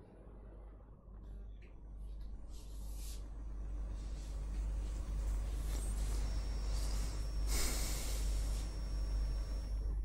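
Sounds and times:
steady low hum: 0.0s - 10.0s
breath through the nose: 7.5s - 8.7s.

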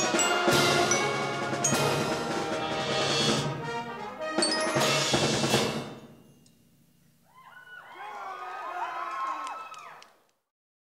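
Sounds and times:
concert band playing: 0.0s - 6.2s
drum and cymbal strikes: 0.0s - 6.3s.

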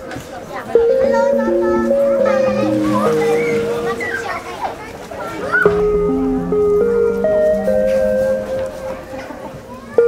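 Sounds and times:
children chattering: 0.0s - 10.0s
background music: 0.8s - 4.9s, 5.7s - 9.6s.

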